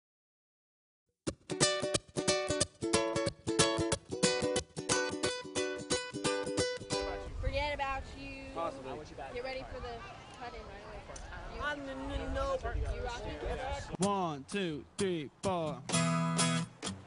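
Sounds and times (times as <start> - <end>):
acoustic strings strummed: 1.3 - 7.2, 15.4 - 17.0.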